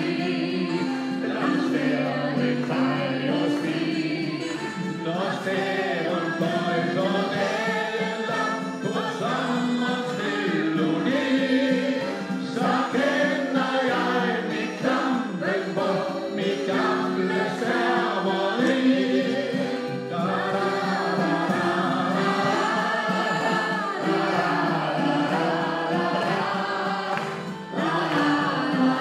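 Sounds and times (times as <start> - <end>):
man singing into microphone: 0.0 - 17.1
group singing in chorus: 0.0 - 29.0.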